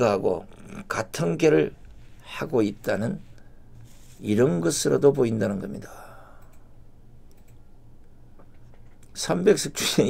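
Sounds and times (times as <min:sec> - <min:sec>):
steady low hum: 0:00.0 - 0:10.0
faint clicks: 0:06.4 - 0:06.7, 0:07.3 - 0:09.2.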